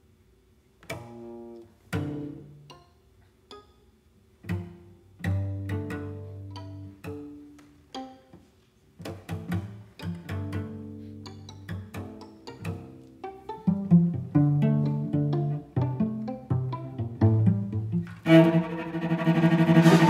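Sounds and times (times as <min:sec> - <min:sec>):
bowed low string notes: 0:00.8 - 0:02.9, 0:04.4 - 0:20.0
plucked string notes: 0:00.8 - 0:20.0.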